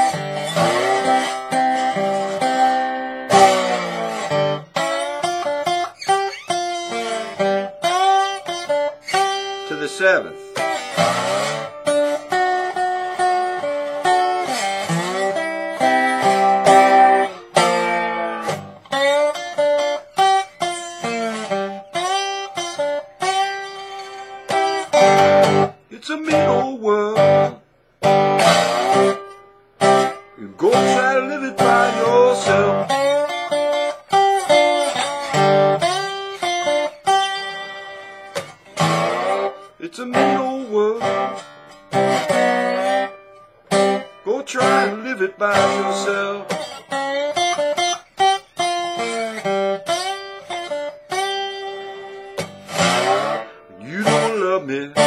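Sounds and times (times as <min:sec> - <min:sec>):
slide guitar playing blues: 0:00.0 - 0:55.0.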